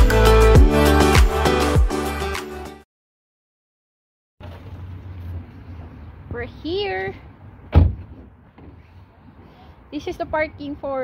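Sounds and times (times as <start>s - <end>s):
car door slamming: 7.7s - 8.2s.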